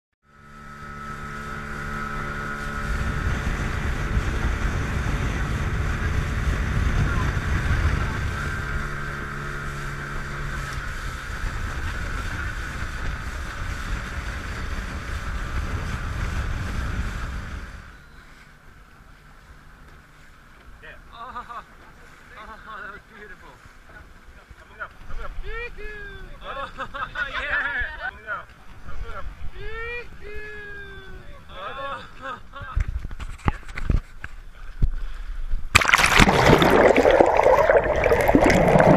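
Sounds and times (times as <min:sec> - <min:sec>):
water noise: 0:00.2 - 0:20.6, 0:34.4 - 0:38.9
small boat motor running: 0:00.2 - 0:22.3
wind on microphone: 0:01.2 - 0:17.9.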